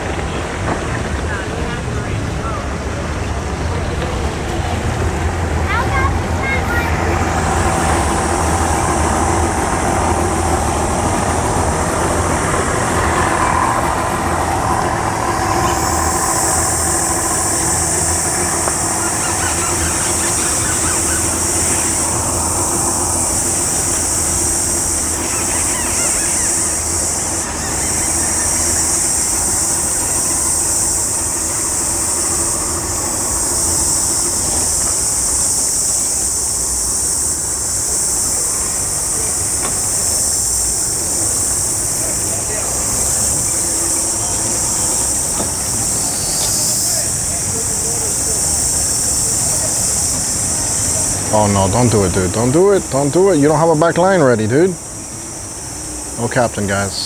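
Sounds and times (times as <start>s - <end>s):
outboard motors idling: 0.0s - 57.0s
steady high-pitched hiss: 0.0s - 57.0s.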